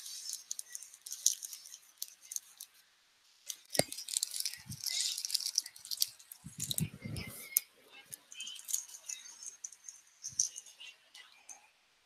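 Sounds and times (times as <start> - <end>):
rustling and crackling: 0.0 - 2.8, 3.4 - 11.4.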